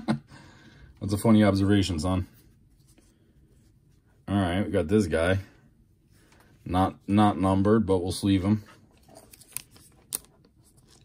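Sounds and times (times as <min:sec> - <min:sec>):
plastic sleeve rustling: 0:08.6 - 0:11.0.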